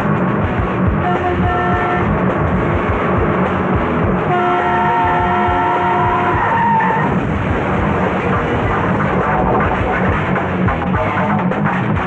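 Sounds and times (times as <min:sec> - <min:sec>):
vehicle noise: 0:00.0 - 0:12.0
truck horn blaring: 0:01.0 - 0:02.8, 0:04.2 - 0:07.1.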